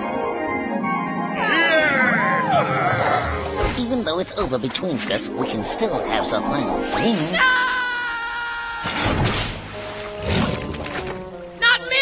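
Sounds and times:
cartoon music sustained chord: 0.0 - 2.7
loud rushing water splash: 8.9 - 11.0.

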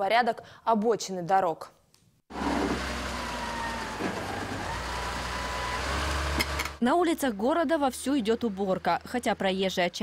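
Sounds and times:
heavy machinery engine rumble: 2.3 - 6.8.

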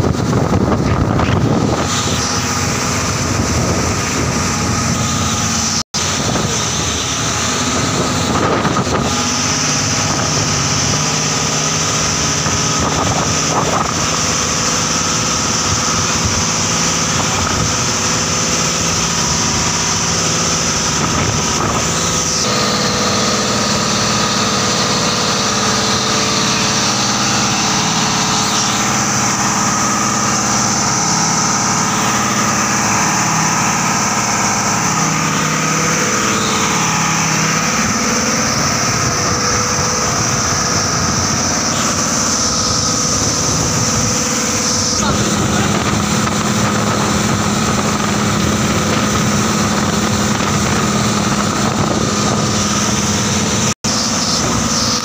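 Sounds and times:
boat engine running: 0.0 - 55.0
wind and water rushing: 0.0 - 55.0.

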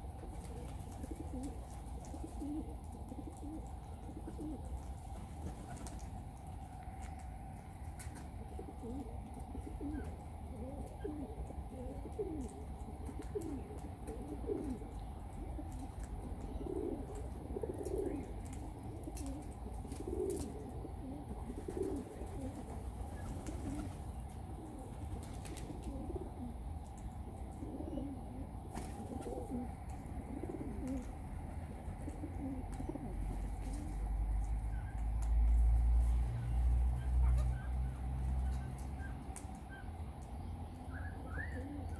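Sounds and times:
corellas calling softly: 8.4 - 41.9.

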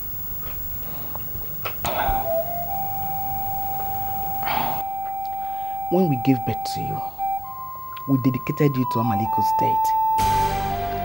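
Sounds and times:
faint higher tone: 2.3 - 11.0
sustained synth note: 2.3 - 11.0.

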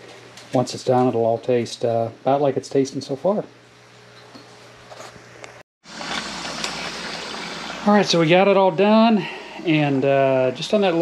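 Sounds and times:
tap water running into a pot: 5.9 - 7.8.

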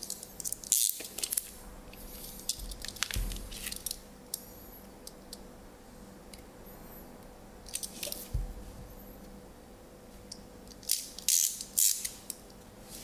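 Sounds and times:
soft low thump: 2.6 - 3.6, 8.3 - 8.9.

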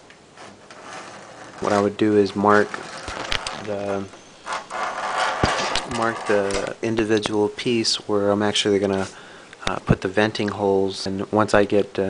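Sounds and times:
metal clamp scraping and rattling: 0.0 - 7.4.

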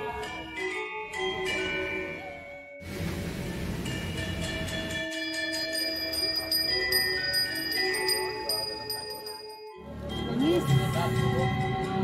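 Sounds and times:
metal bells ringing: 4.6 - 12.0.

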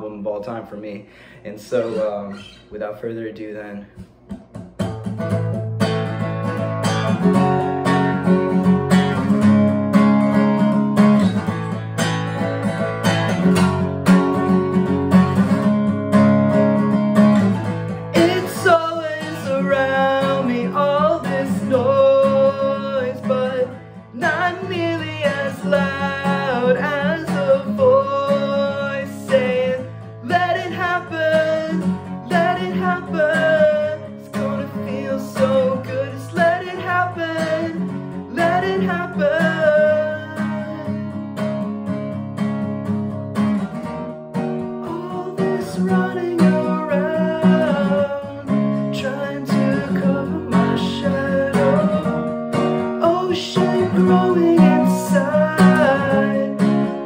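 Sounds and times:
acoustic guitar strumming: 0.0 - 2.8, 4.0 - 57.0
man singing: 0.0 - 3.6, 18.1 - 41.3, 44.8 - 57.0.

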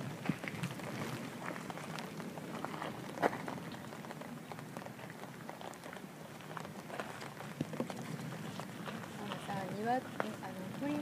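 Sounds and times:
footsteps on gravel: 0.0 - 11.0.

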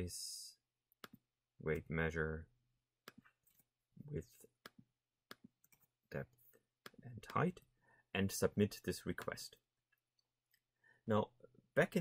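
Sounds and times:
mouse and keyboard clicks: 1.0 - 1.2.

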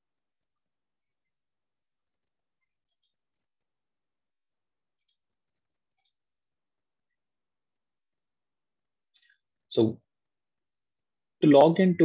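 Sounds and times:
computer mouse clicks: 2.6 - 3.4, 4.9 - 6.3.

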